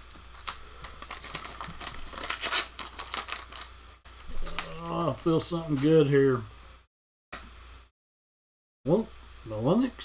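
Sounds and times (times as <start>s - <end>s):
wax paper wrapper crinkling and tearing: 0.0s - 5.2s.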